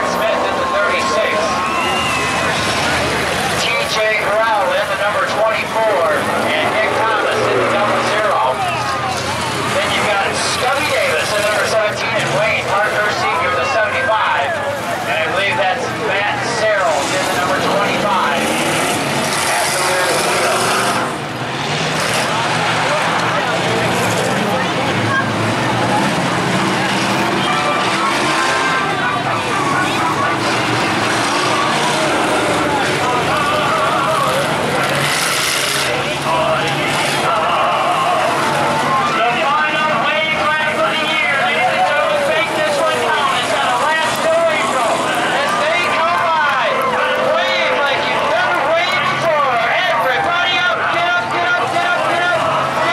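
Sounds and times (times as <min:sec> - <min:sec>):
crowd voices: 0:00.0 - 0:52.9
race car engines revving: 0:00.0 - 0:52.9.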